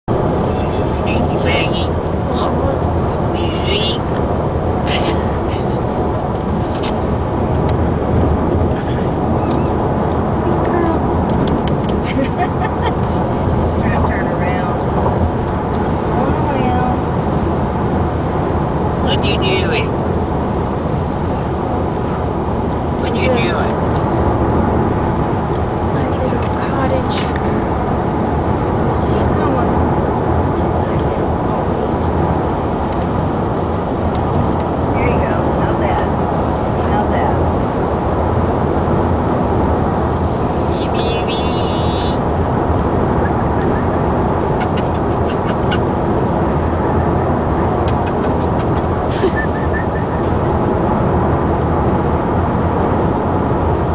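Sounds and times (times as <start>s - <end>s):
car engine rumble: 0.0s - 53.9s
road noise: 0.0s - 53.9s
soft voice: 0.3s - 4.1s, 8.7s - 11.3s, 40.6s - 42.2s.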